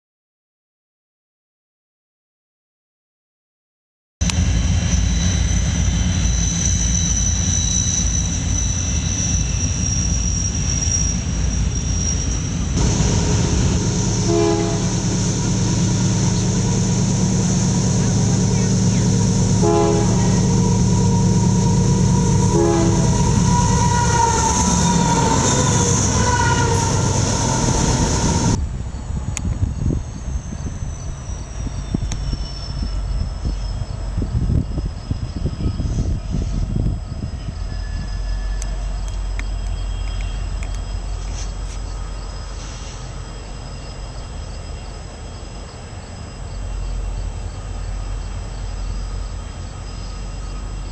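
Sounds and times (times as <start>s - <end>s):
diesel locomotives rumbling: 4.2s - 50.9s
locomotive air horn blasts: 12.8s - 28.6s.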